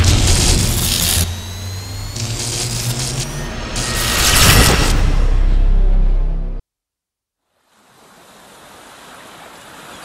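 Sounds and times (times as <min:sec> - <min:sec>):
electric crackling and buzzing: 0:00.0 - 0:06.4
faint rising whine: 0:00.0 - 0:06.6
low hum: 0:00.0 - 0:06.6
whoosh: 0:00.0 - 0:06.6.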